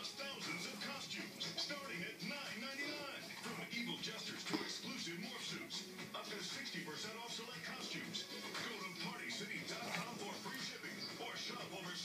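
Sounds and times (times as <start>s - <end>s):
background music: 0.0s - 12.0s
voice on television: 0.0s - 12.0s.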